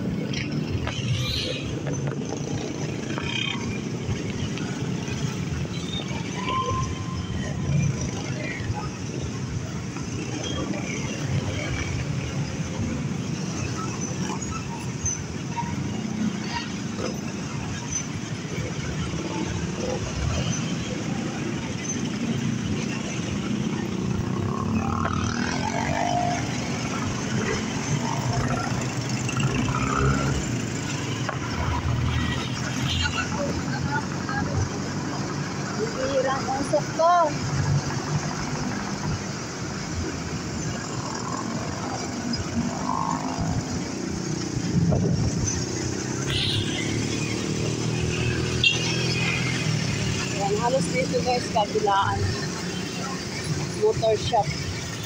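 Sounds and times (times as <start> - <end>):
passing traffic: 0.0 - 55.0
road and wind noise: 0.0 - 55.0.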